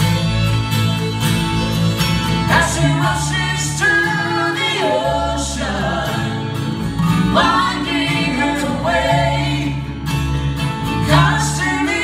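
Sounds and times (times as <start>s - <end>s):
acoustic guitars: 0.0s - 12.0s
electric bass: 0.0s - 12.0s
fiddle: 0.0s - 12.0s
people singing together: 2.4s - 10.1s, 11.0s - 12.0s.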